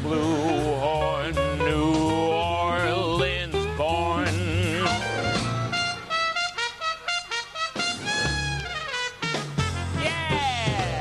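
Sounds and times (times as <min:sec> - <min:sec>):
bass line: 0:00.0 - 0:06.5, 0:07.8 - 0:11.0
jazz trumpet line: 0:00.1 - 0:11.0.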